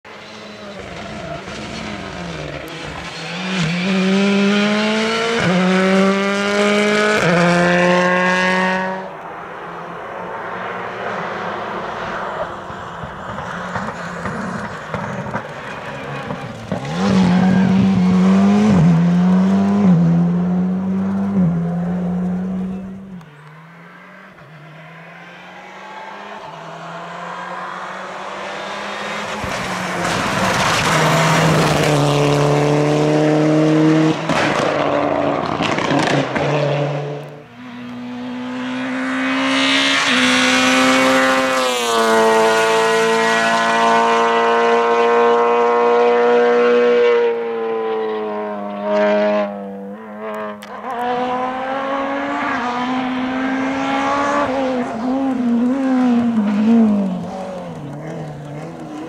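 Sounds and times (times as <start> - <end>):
rally cars at full throttle: 0.0 - 59.0.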